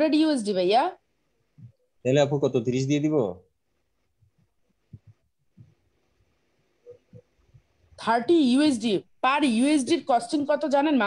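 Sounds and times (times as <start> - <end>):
faint low thumps: 4.2 - 5.9.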